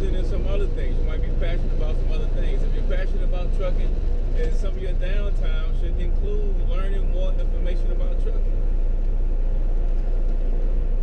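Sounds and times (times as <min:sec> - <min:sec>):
truck engine and road rumble: 0:00.0 - 0:11.0.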